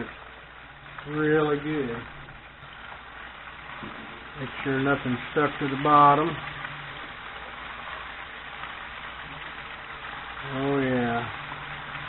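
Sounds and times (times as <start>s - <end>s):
fish deep-frying in oil: 0.0s - 12.0s.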